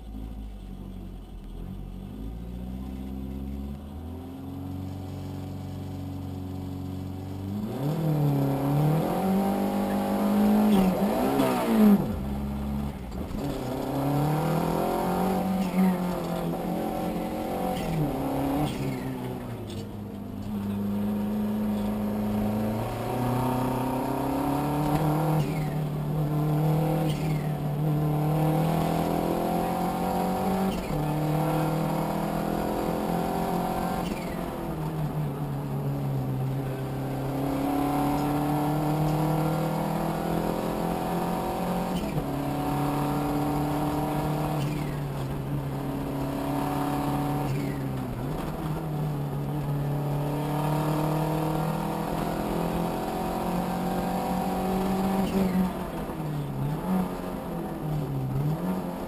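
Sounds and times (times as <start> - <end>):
car engine revving through gears: 2.1 - 59.0.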